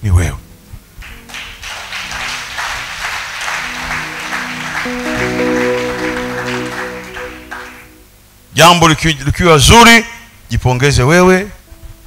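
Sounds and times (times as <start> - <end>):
music of held chords: 0.4 - 8.6
congregation applauding: 1.0 - 8.2.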